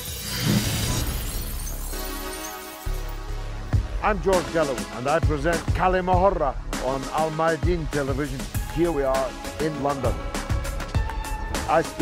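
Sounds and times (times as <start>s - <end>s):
glass shattering: 0.0s - 3.2s.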